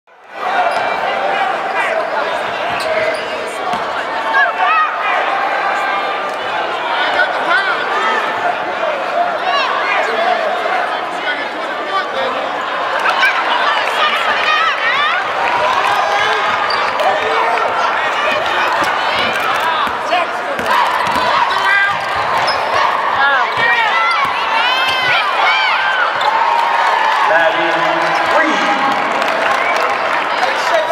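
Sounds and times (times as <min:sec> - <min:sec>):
voices of players and spectators: 0:00.1 - 0:30.9
sneakers squeaking: 0:00.6 - 0:01.1, 0:01.8 - 0:04.1, 0:16.3 - 0:17.2, 0:18.1 - 0:26.4
basketball bouncing on court: 0:02.4 - 0:04.0, 0:18.3 - 0:25.3.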